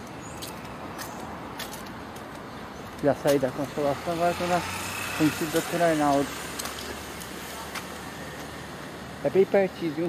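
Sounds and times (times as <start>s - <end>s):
traffic hiss: 2.4s - 10.0s.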